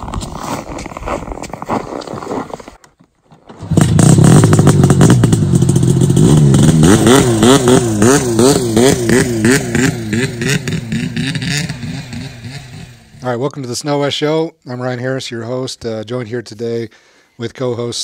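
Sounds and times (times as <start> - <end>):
engine revving: 3.6 - 13.2.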